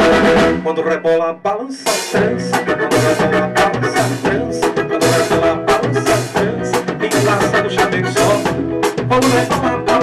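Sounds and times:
live band playing merengue: 0.0 - 1.0, 1.8 - 10.0.

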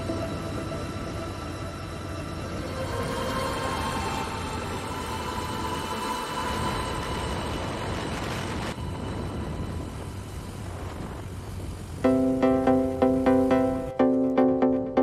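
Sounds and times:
wind noise: 0.0 - 13.0.

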